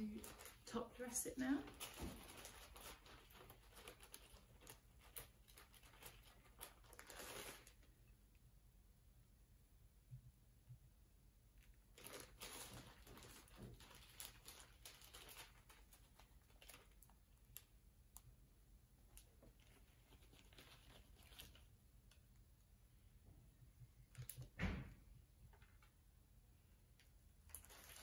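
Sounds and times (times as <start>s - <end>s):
plastic bag crinkling: 0.0s - 8.0s, 11.6s - 17.8s, 19.0s - 22.3s, 27.4s - 28.0s.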